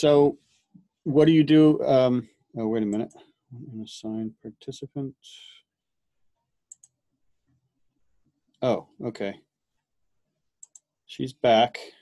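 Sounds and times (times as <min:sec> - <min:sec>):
computer mouse clicks: 0:06.7 - 0:07.6, 0:10.6 - 0:10.9.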